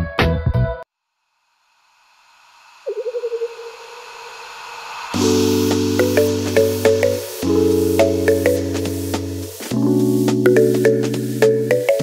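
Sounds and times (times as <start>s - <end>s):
hiss: 1.4s - 11.4s
fast-warbling tone: 2.8s - 9.4s
electronic music intro: 5.1s - 12.0s.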